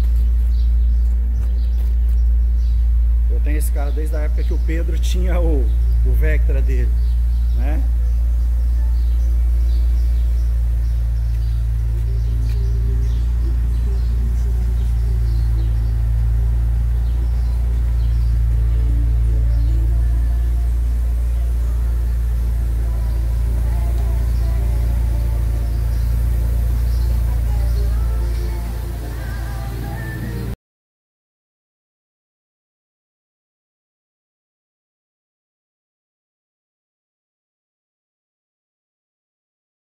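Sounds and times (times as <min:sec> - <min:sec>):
steady low rumble: 0:00.0 - 0:30.6
music from car stereo: 0:03.2 - 0:30.6.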